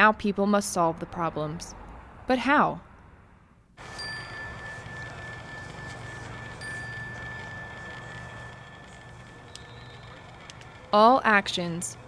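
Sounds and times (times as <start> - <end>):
meditation bell ringing: 3.8 - 10.4.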